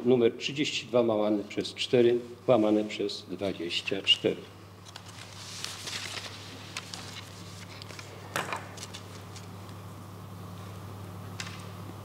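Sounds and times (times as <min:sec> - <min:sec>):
low electrical hum: 0:00.0 - 0:12.0
papers rustling: 0:04.8 - 0:09.5.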